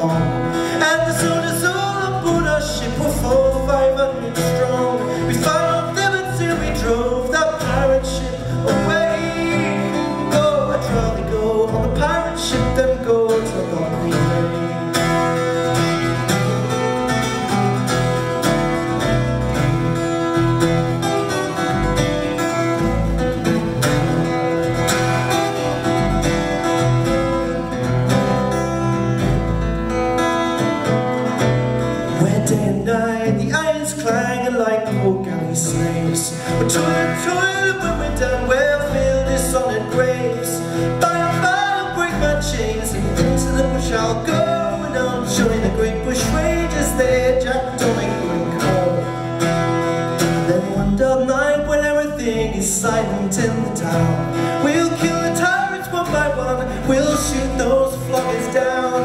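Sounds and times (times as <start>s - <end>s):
man singing: 0.0s - 16.8s, 32.0s - 49.5s, 50.2s - 59.0s
acoustic guitar playing: 0.0s - 59.0s.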